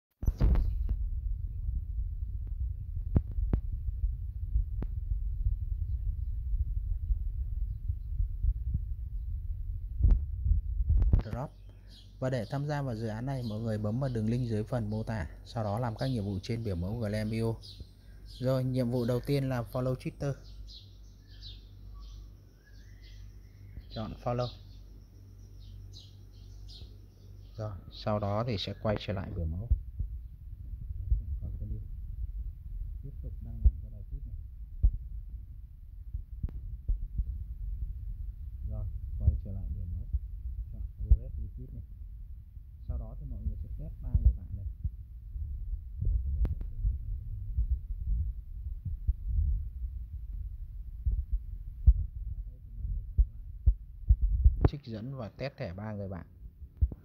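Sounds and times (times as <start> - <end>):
low rumbling thumping: 0.2 - 11.9, 28.9 - 54.8, 56.4 - 57.0
low steady hum: 0.2 - 57.0.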